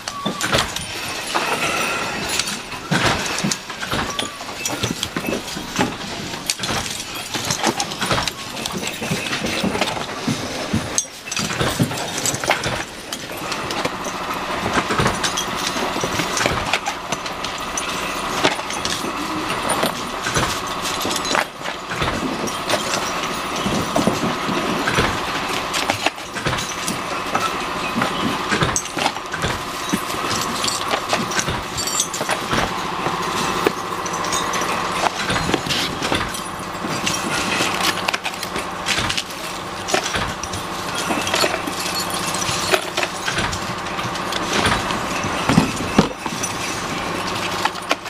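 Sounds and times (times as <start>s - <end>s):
small metal parts clicking: 10.9s - 48.0s.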